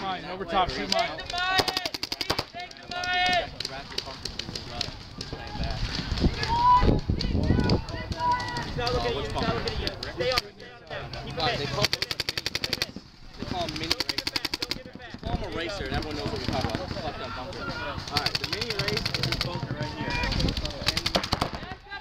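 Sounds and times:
paintball markers firing rapidly: 0.8s - 5.4s, 7.2s - 21.8s
voices shouting: 5.0s - 11.8s, 15.8s - 20.9s.

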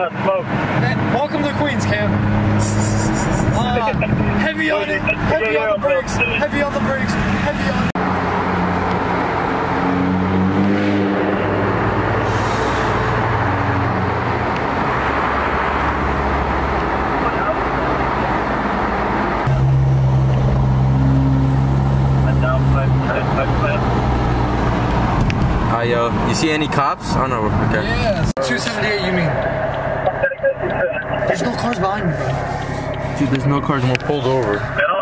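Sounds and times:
road noise inside car: 0.0s - 35.0s
low engine drone: 2.1s - 6.5s, 28.8s - 35.0s.

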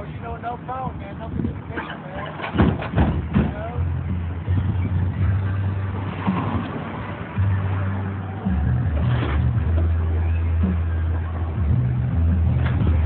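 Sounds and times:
car engine droning: 1.7s - 13.0s.

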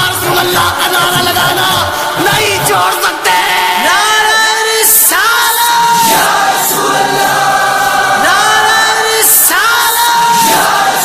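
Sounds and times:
choir holding a chord: 1.5s - 11.0s.

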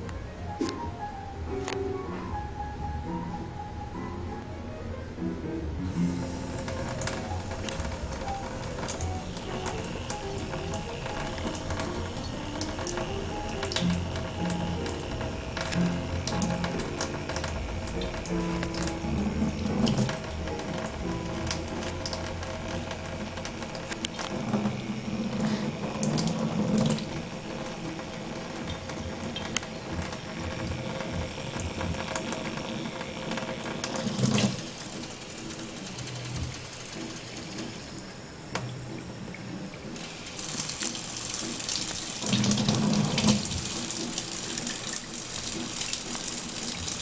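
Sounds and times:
faucet water splashing into sink: 6.0s - 47.0s.

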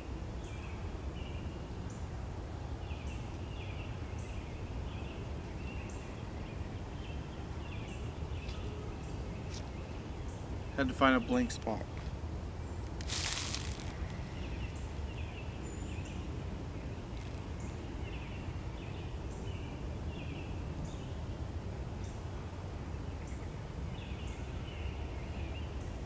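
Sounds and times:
rustle: 0.0s - 26.0s.

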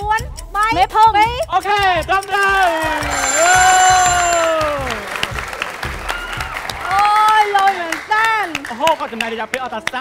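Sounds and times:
audience clapping: 2.9s - 10.0s
bright ringing bell tone: 3.1s - 4.7s.

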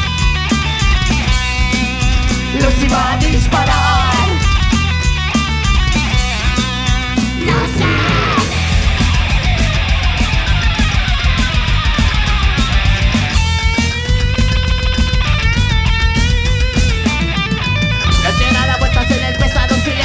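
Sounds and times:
live rock band: 0.0s - 20.0s
lead guitar sustained bent notes: 1.0s - 20.0s.

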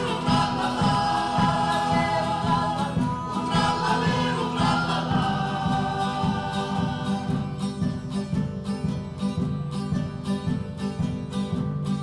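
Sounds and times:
male choir singing in harmony: 0.0s - 8.2s
strummed acoustic guitars: 0.0s - 12.0s.

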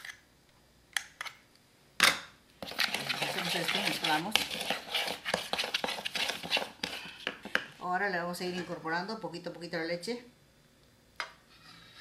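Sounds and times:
spatula scraping plastic bowl: 2.6s - 7.7s
spatula tapping bowl: 2.6s - 7.7s.

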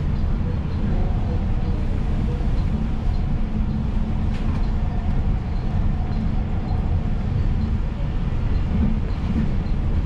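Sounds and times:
train car rumble: 0.0s - 10.0s.

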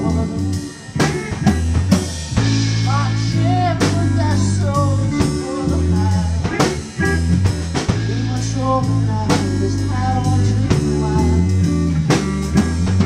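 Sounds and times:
live band playing: 0.0s - 13.0s.

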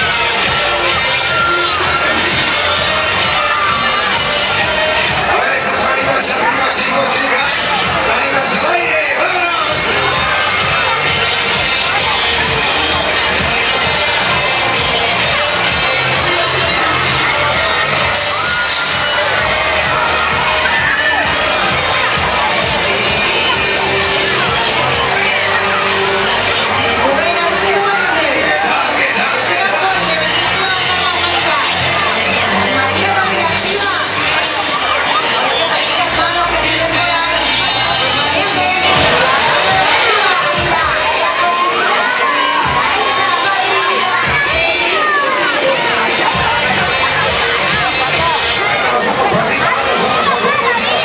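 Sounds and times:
loud fair music with beat: 0.0s - 51.0s
riders screaming and shouting: 0.1s - 5.2s, 9.7s - 26.8s, 38.7s - 45.6s
burst of hiss: 18.2s - 19.2s, 33.6s - 34.8s, 38.9s - 40.4s.

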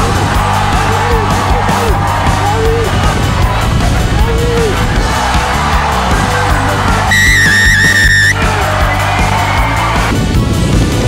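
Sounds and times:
background music with steady beat: 0.0s - 11.0s
shrill whistle blast: 7.0s - 8.4s.

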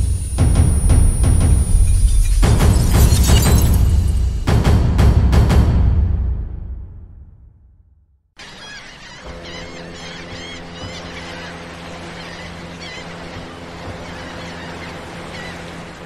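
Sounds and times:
sustained low drone: 0.0s - 2.8s
bird calls: 8.4s - 16.0s
surf washing: 8.4s - 16.0s.

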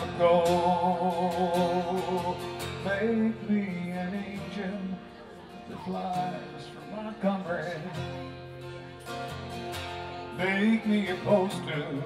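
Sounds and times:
man singing: 0.0s - 8.5s, 10.2s - 12.0s
acoustic guitar strumming: 0.0s - 12.0s.

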